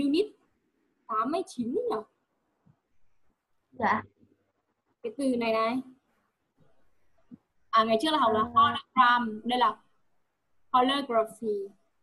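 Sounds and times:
person speaking: 3.8s - 4.1s, 7.8s - 9.7s.

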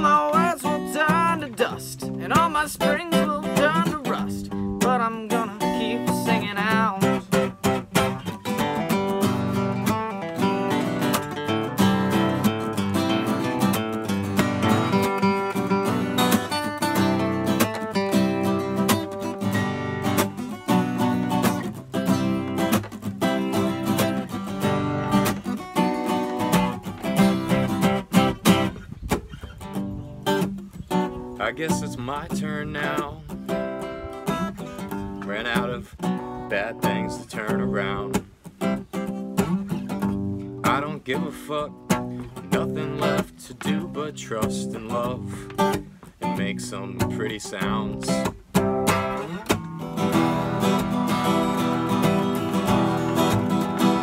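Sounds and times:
acoustic guitars strumming: 0.0s - 54.0s.

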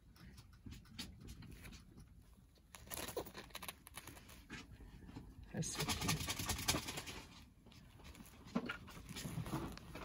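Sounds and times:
scratching and rustling: 0.0s - 10.0s.

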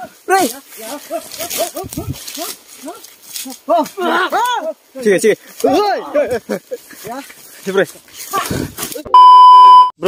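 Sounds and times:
censor bleep: 9.1s - 10.0s.

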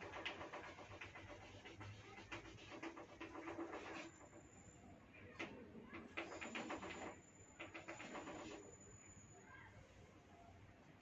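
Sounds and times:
chalk scratching on a blackboard: 0.0s - 4.5s.

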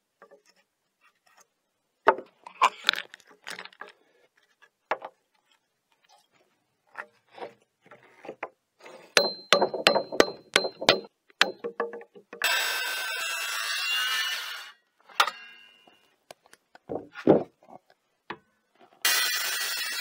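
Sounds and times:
hammer striking chisel: 9.2s - 12.0s
circular saw cutting wood: 12.4s - 14.8s, 19.0s - 20.0s.

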